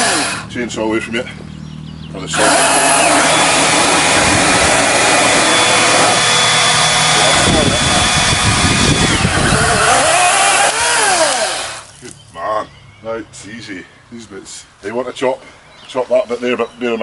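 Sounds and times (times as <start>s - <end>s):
chainsaw cutting branch: 0.0s - 0.5s, 2.3s - 12.2s.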